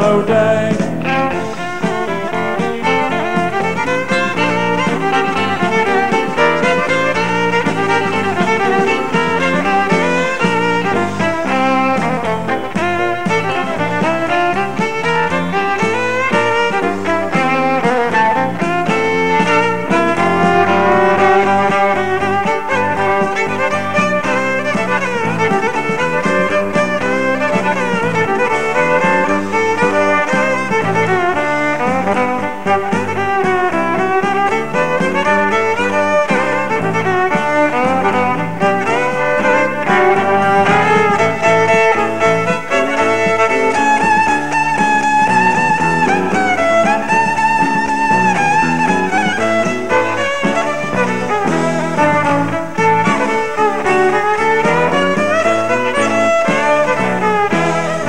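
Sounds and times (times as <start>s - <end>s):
bass guitar: 0.0s - 58.0s
drums: 0.0s - 58.0s
electric guitar: 0.0s - 58.0s
fiddle melody: 0.0s - 58.0s.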